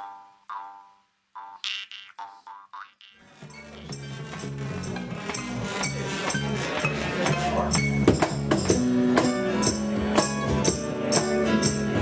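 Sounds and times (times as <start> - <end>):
twanging boing-like notes: 1.4 - 5.6
acoustic band playing: 3.2 - 12.0.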